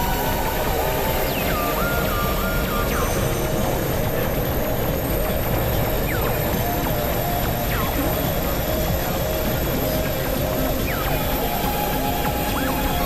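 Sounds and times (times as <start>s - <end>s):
falling synth sweeps: 0.0s - 13.0s
synthesizer drone: 0.0s - 13.0s.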